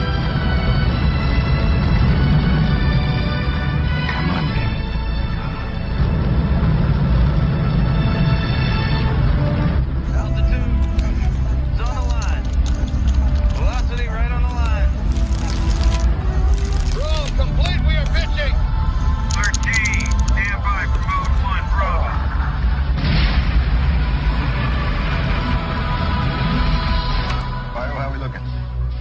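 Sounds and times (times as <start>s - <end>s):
deep rocket rumble: 0.0s - 27.6s
orchestral film score: 0.0s - 29.0s.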